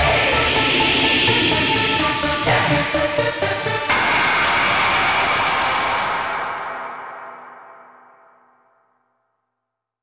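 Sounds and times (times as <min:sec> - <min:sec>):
noisy synthesizer wash: 0:00.0 - 0:08.1.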